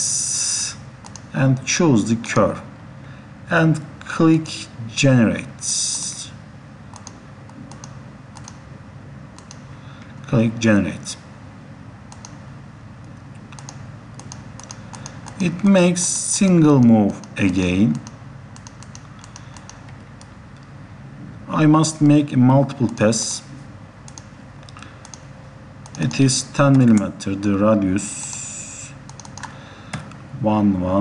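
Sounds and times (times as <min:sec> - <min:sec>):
low room hiss: 0:00.0 - 0:31.0
steady low hum: 0:00.0 - 0:31.0
computer input clicks: 0:01.0 - 0:01.3, 0:06.9 - 0:08.6, 0:09.4 - 0:09.6, 0:12.1 - 0:12.4, 0:13.5 - 0:15.4, 0:18.0 - 0:20.3, 0:29.1 - 0:29.5.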